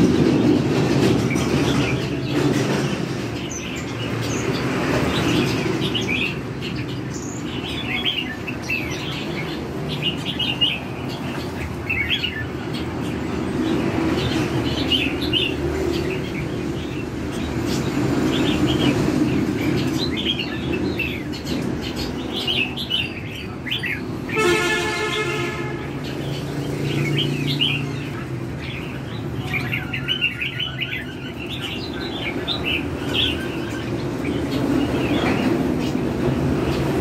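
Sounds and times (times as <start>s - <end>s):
birds chirping and calling: 0.0s - 37.0s
horn: 24.3s - 26.0s.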